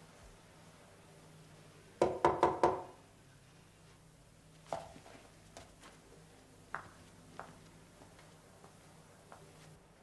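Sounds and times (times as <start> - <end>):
knocks on wooden door: 2.0 - 2.9.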